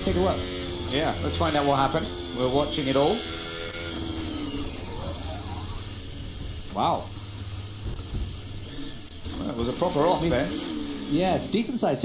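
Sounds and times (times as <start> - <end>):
racing car engine at high revs: 0.0 - 12.0.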